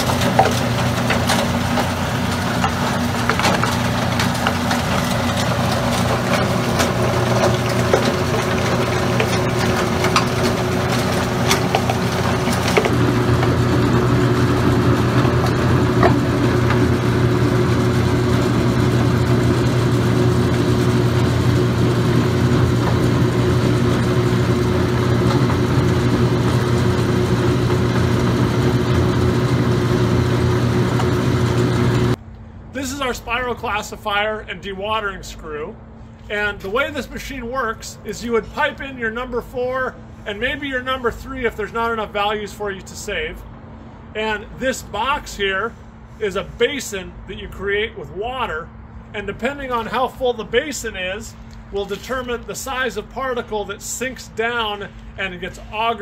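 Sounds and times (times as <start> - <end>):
wash of water and grit: 0.0 - 29.8
machinery humming: 0.0 - 34.5.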